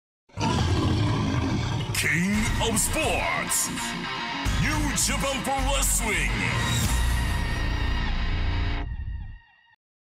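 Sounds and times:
lion roaring: 0:00.3 - 0:02.4.

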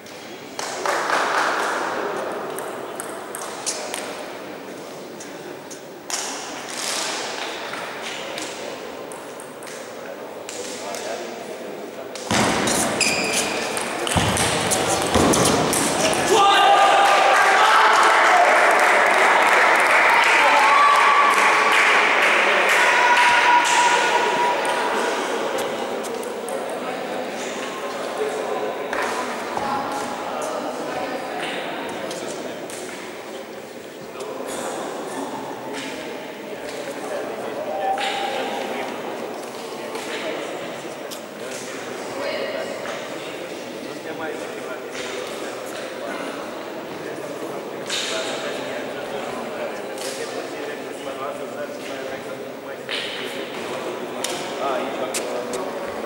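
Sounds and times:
voices: 0:10.4 - 0:56.0.

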